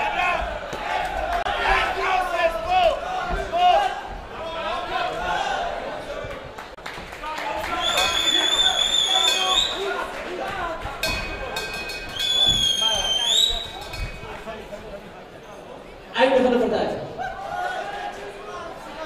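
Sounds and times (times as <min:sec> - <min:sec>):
voices shouting in a hall: 0:00.0 - 0:14.6, 0:16.0 - 0:19.0
long shrill whistle: 0:07.8 - 0:09.9, 0:12.1 - 0:13.8.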